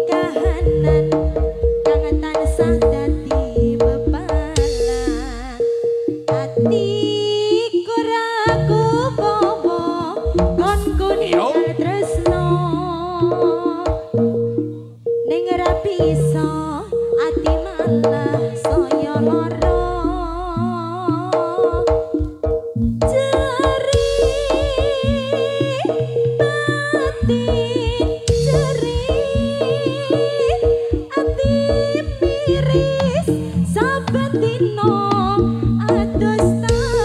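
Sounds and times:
hand-drum pattern: 0.0 - 37.0
held keyboard note: 0.0 - 37.0
wavering melody with vibrato: 0.0 - 37.0
sharp drum strokes: 21.8 - 34.3.

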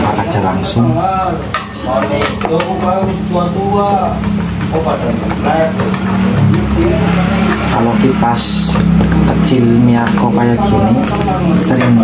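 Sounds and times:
steady low hum: 0.0 - 12.0
person talking: 2.0 - 12.0.

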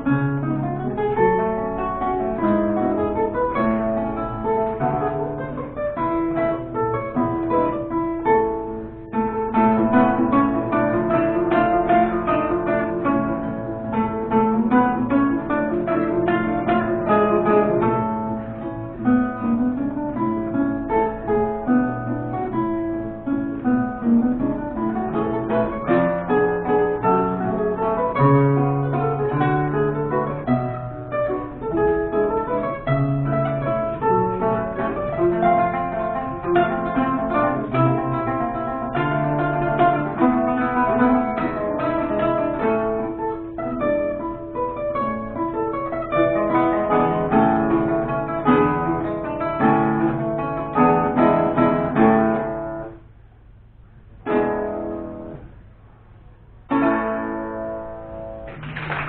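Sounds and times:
classical guitar duet: 0.0 - 53.2, 53.8 - 59.0.

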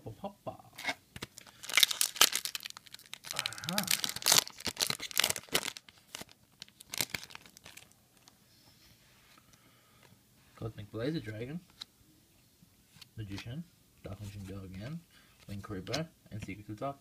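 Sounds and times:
foil pack tearing and crinkling: 1.2 - 7.9.

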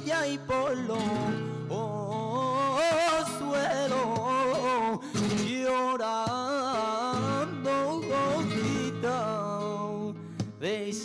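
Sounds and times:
flamenco guitar: 0.0 - 11.0
man singing flamenco: 0.0 - 11.0.

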